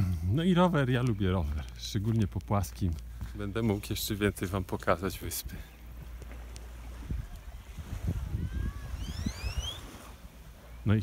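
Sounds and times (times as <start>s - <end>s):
wind buffeting microphone: 5.2s - 11.0s
thin rising whistles: 8.2s - 11.0s.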